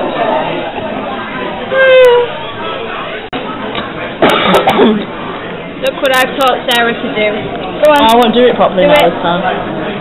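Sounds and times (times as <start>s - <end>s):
person coughing: 4.2s - 5.1s.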